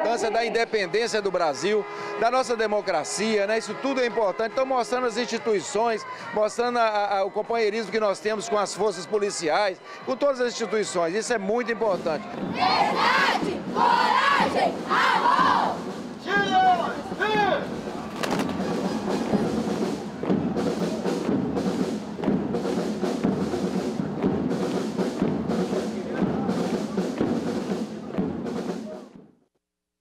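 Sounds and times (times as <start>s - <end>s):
parade band music: 0.0s - 29.2s
steady drum beat: 11.9s - 29.3s
children chanting in unison: 12.5s - 15.8s.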